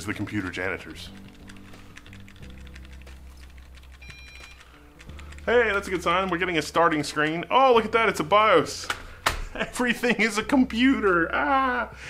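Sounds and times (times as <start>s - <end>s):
rapid keyboard key presses: 0.0s - 7.5s.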